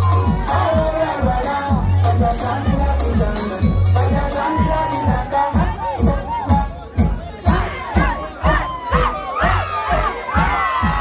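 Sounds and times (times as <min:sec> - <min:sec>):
crowd cheering and shouting: 0:00.0 - 0:11.0
loud music with kick drum: 0:00.0 - 0:11.0.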